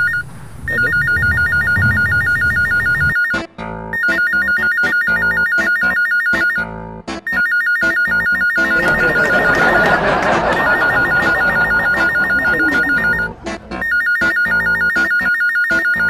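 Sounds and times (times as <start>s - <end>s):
rush of noise: 0.0s - 2.7s
electronic ringtone music: 0.0s - 16.0s.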